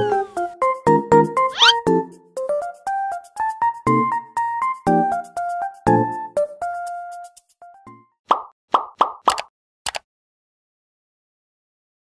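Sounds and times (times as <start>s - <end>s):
pop sound effects: 1.5s - 1.8s
click: 9.3s - 10.0s.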